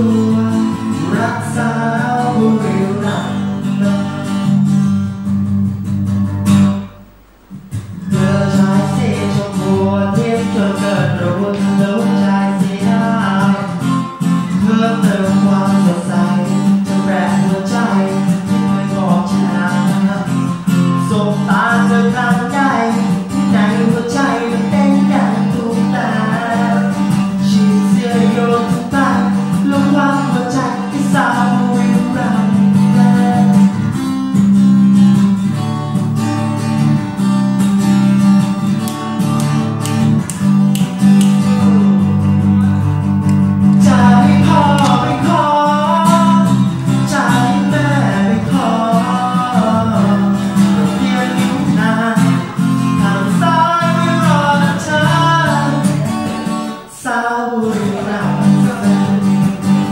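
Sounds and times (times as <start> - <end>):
man singing: 0.0 - 4.8, 7.7 - 34.5, 39.5 - 59.9
acoustic guitar strumming: 0.0 - 59.9.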